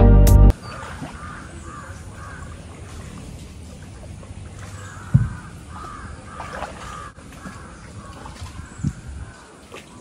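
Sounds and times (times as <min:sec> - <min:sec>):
crows cawing: 0:01.0 - 0:02.6, 0:04.9 - 0:08.8
dull low thump: 0:05.1 - 0:05.4.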